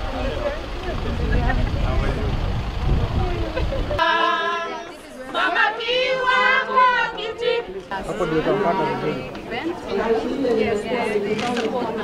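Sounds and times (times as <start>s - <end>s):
steady low rumble: 0.0s - 4.0s
people talking at once: 0.0s - 12.0s.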